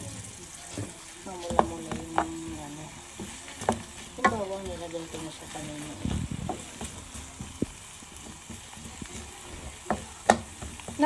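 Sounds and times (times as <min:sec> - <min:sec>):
food sizzling in a frying pan: 0:00.0 - 0:11.0
wooden spatula knocking on pan: 0:00.7 - 0:11.0.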